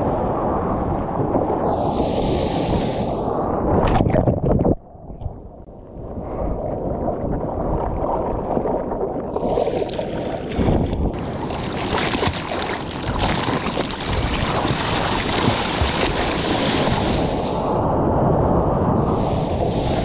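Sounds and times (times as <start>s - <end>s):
sea water rushing and splashing: 0.0s - 4.3s, 6.2s - 20.0s
wind buffeting microphone: 0.0s - 20.0s.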